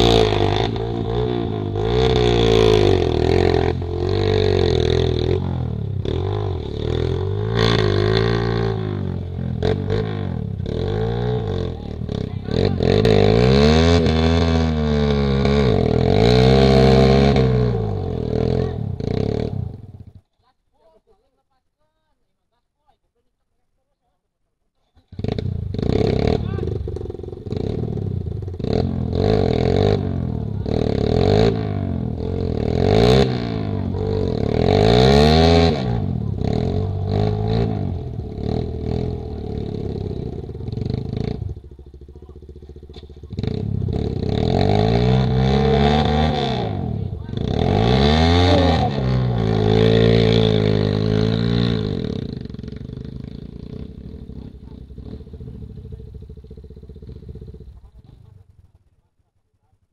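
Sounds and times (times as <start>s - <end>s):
motorcycle engines revving: 0.0s - 20.2s, 24.9s - 59.6s.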